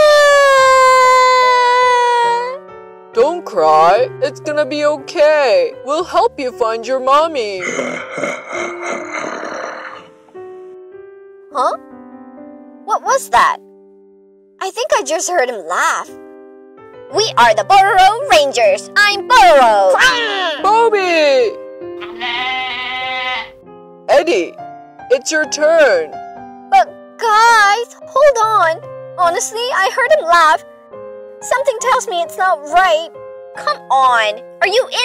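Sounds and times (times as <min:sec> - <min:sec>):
children's background music: 0:00.0 - 0:35.0
cartoon character calling out: 0:19.8 - 0:20.8.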